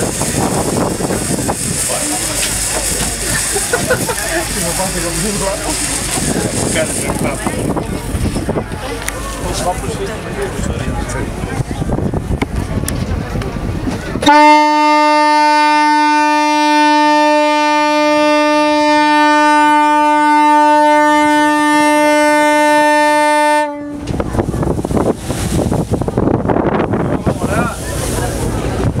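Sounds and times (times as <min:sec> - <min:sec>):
sea noise: 0:00.0 - 0:29.0
wind: 0:00.0 - 0:29.0
ship's horn blast: 0:14.2 - 0:24.9.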